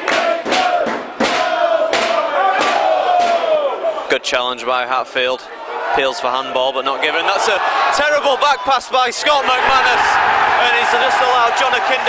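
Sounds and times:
crowd chanting: 0.0 - 4.0, 9.3 - 12.0.

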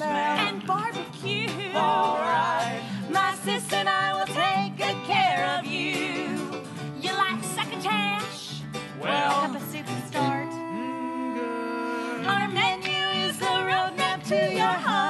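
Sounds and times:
small string band: 0.0 - 15.0
women singing in harmony: 0.0 - 15.0.

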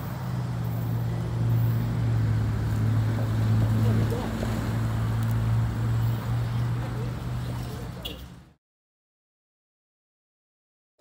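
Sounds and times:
diesel locomotive engine droning: 0.0 - 8.6.

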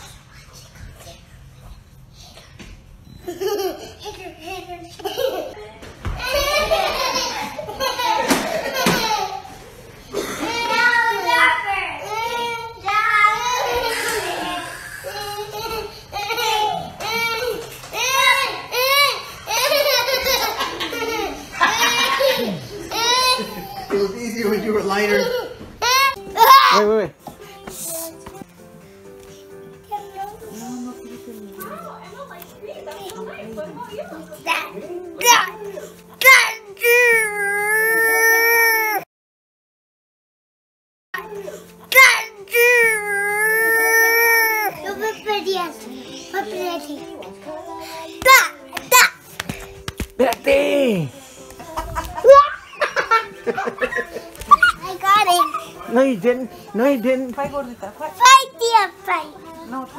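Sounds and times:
soft background music: 6.2 - 39.0, 41.2 - 59.9
child laughing loudly: 13.6 - 16.9, 18.8 - 23.9, 51.6 - 55.8
high-pitched squealing voice: 13.8 - 15.2.

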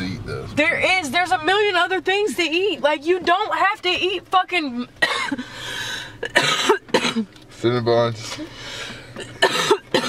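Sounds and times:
person coughing: 5.0 - 5.4, 6.2 - 7.3, 9.2 - 10.0.

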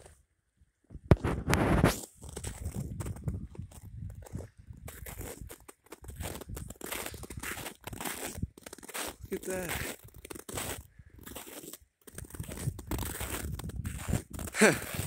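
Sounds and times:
footsteps crunching in snow: 1.2 - 15.0.

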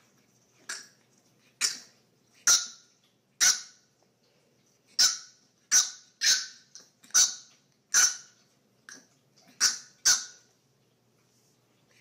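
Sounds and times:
puppy yapping: 5.0 - 10.5.

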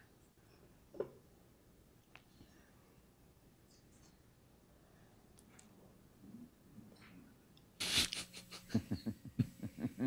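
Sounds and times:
person laughing: 7.8 - 10.0.

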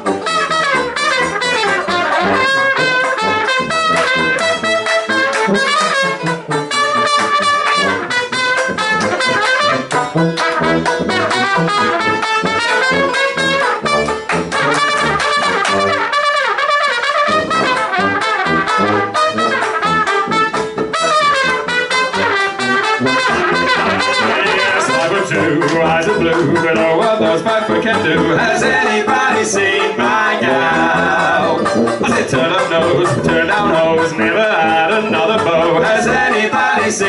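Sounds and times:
sousaphone bass: 0.0 - 16.2, 17.3 - 37.0
strummed banjo: 0.0 - 37.0
trumpet: 0.0 - 37.0.

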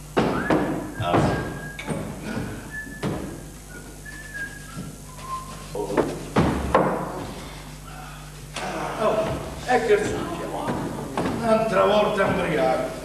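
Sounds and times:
loud knocks and thuds: 0.2 - 3.4, 6.0 - 7.3, 9.2 - 12.7
person whistling a tune: 0.2 - 5.8.

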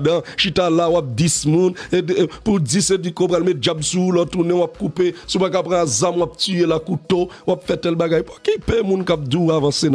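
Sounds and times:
man talking: 0.0 - 9.9
music with steady low beat: 0.0 - 9.9.

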